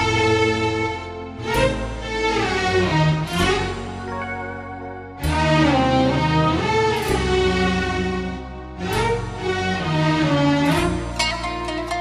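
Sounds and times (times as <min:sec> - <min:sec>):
low bass line: 0:00.0 - 0:12.0
string section held notes: 0:00.1 - 0:12.0.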